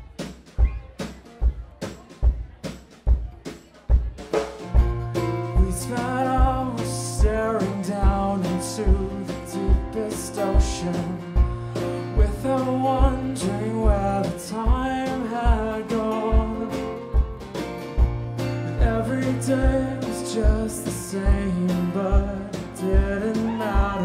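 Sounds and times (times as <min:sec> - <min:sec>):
steady kick drum beat: 0:00.0 - 0:24.0
strummed acoustic guitar: 0:00.0 - 0:24.0.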